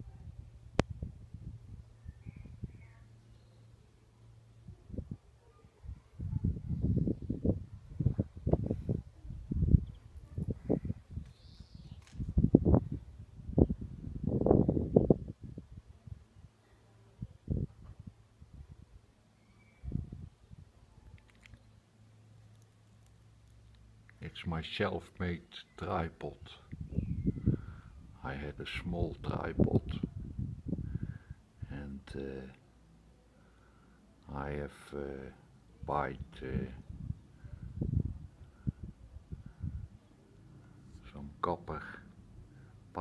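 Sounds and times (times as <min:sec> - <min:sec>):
faint steady hum: 0:00.0 - 0:43.0.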